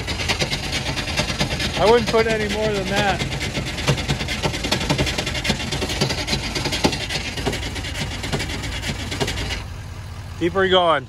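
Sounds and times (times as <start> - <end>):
diesel engine running roughly: 0.0 - 11.0.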